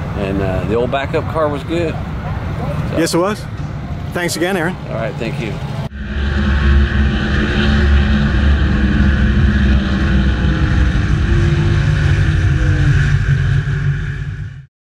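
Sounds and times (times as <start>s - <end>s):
race car engine running: 5.4s - 14.7s.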